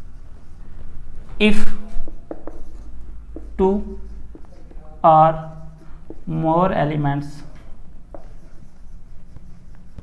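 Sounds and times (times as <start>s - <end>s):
marker scratching on whiteboard: 1.4s - 10.0s.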